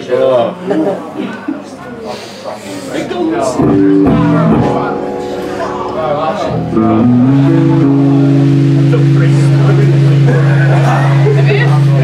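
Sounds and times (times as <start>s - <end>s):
electric guitar note sliding: 3.3s - 12.0s.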